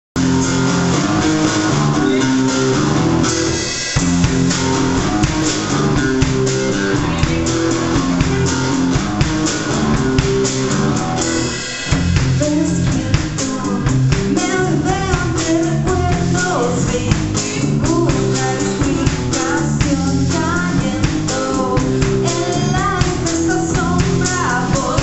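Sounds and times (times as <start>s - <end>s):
electric bass: 0.0s - 25.0s
drum kit: 0.2s - 25.0s
electric guitar: 0.2s - 25.0s.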